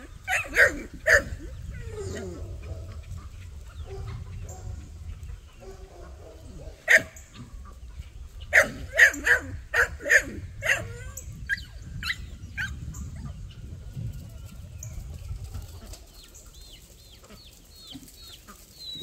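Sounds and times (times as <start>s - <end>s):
chickens clucking: 0.0s - 19.0s
chickens squawking: 0.0s - 19.0s.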